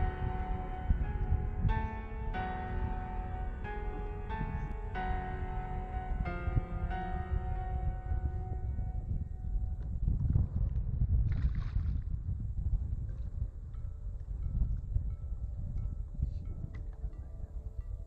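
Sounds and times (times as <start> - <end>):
background music: 0.0 - 9.7
wind buffeting microphone: 0.0 - 18.0.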